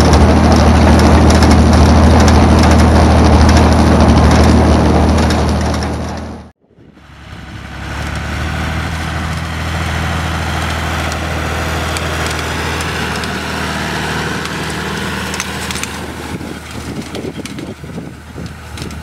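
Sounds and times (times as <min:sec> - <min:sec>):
tractor diesel engine running: 0:00.0 - 0:19.0.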